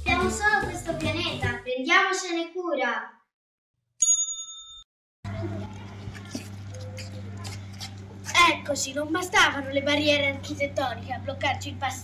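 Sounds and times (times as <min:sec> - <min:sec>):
bell-like ding: 0:04.0 - 0:04.9.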